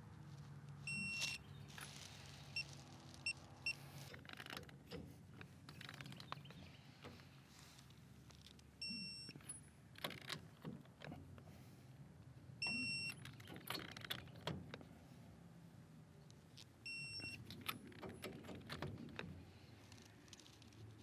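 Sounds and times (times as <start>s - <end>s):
torque wrench electronic beeps: 12.6s - 13.2s.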